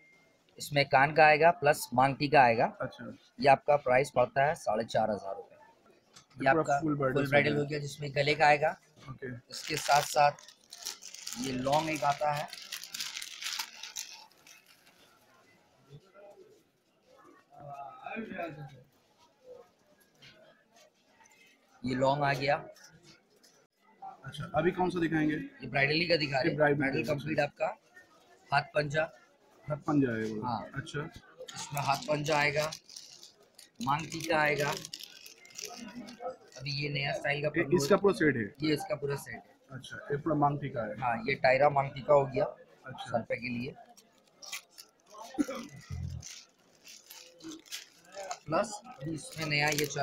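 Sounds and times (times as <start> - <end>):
plastic packet crinkling: 9.5 - 15.2, 31.5 - 36.8, 43.5 - 50.0.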